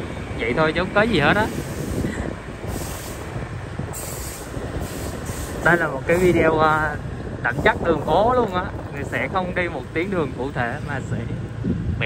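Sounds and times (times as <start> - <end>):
vehicle and road noise: 0.0 - 12.0.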